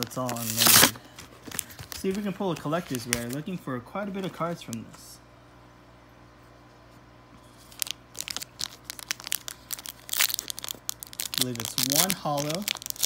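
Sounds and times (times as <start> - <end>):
foil wrapper crinkling and tearing: 0.0 - 3.4, 7.6 - 13.0
faint steady hum: 0.0 - 13.0.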